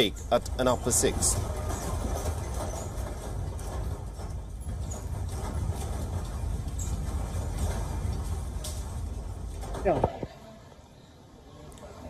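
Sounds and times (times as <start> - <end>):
light rattling and clattering: 0.0 - 10.4.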